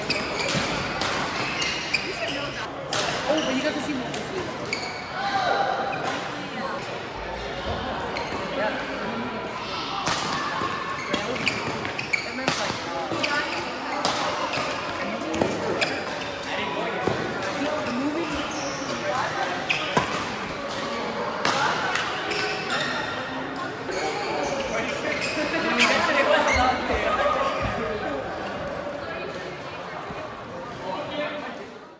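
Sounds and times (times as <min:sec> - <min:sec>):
chatter of players' voices: 0:00.0 - 0:31.9.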